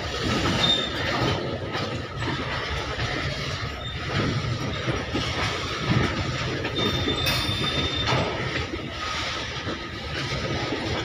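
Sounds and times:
freight train rumbling past: 0:00.0 - 0:11.0
train wheel squeal: 0:00.0 - 0:11.0.

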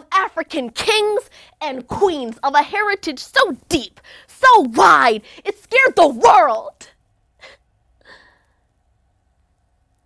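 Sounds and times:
woman breathing faintly: 0:07.4 - 0:08.8.

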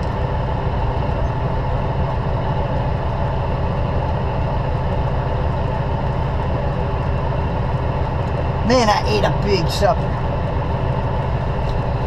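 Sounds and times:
diesel truck engine rumbling: 0:00.0 - 0:12.0.

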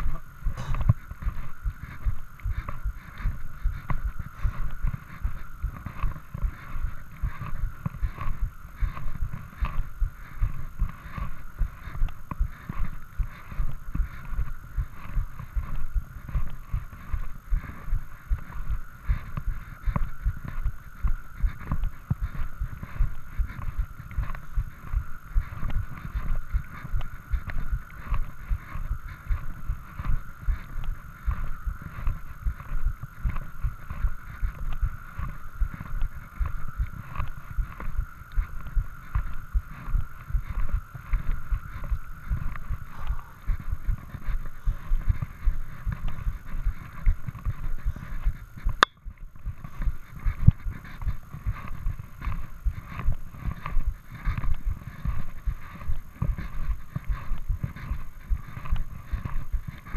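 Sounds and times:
faint steady whine: 0:00.0 - 0:59.9
running footsteps thudding: 0:00.4 - 0:01.4.

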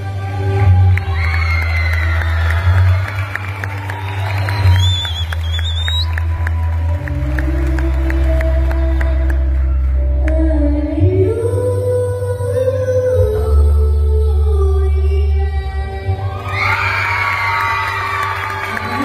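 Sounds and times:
audience cheering: 0:00.7 - 0:08.2, 0:16.4 - 0:19.0
whistle: 0:04.2 - 0:06.4.

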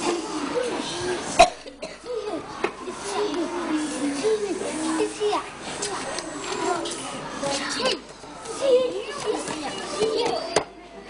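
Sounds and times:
children's voices: 0:00.0 - 0:11.0
sharp cough or knock: 0:01.4 - 0:02.1.

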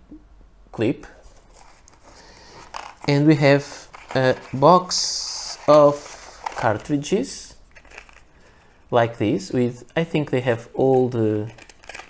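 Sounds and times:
cardboard and plastic packaging rustling: 0:01.1 - 0:08.9, 0:10.8 - 0:12.0.

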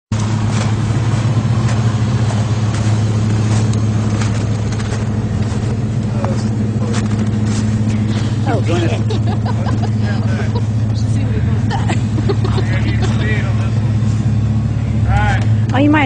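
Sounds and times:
truck engine running: 0:00.1 - 0:16.0.

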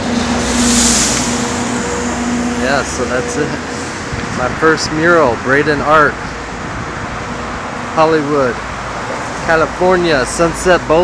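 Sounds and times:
vehicle passing: 0:00.0 - 0:04.9
steady low hum: 0:00.0 - 0:06.7.

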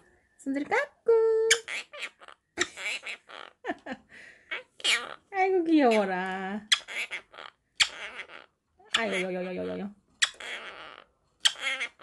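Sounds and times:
parrot calling: 0:01.5 - 0:03.7, 0:04.5 - 0:12.0.

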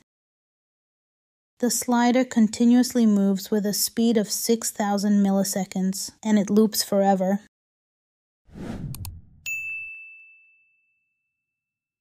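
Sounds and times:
short whoosh: 0:08.5 - 0:09.5
high bell ding: 0:09.4 - 0:11.3.

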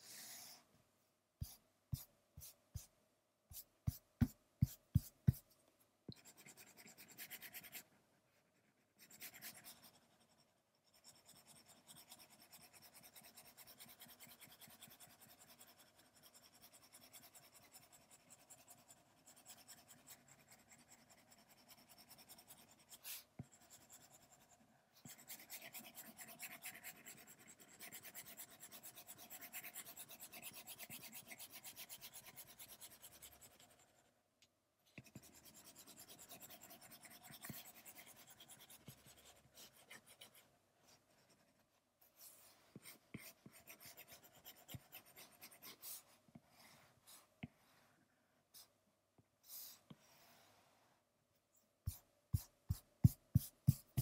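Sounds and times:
stylus scratching on glass screen: 0:35.0 - 0:40.4.

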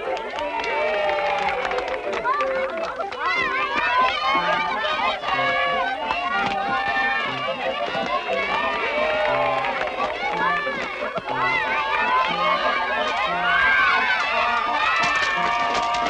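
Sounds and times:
children shrieking and shouting: 0:00.0 - 0:16.0.

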